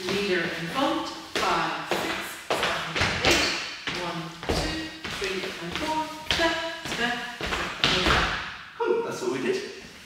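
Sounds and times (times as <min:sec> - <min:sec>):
dance footsteps on wooden floor: 0:00.0 - 0:08.6.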